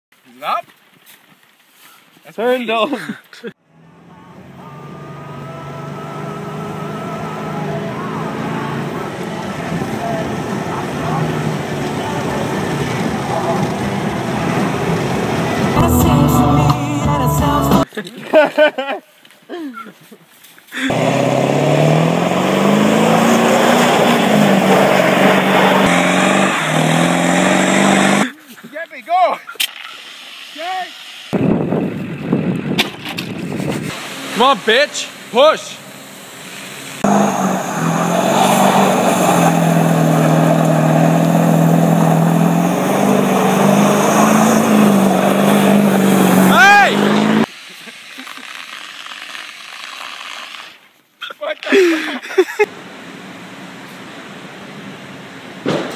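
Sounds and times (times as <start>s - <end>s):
diesel truck engine revving: 3.6s - 17.8s, 20.8s - 28.3s, 31.3s - 47.5s.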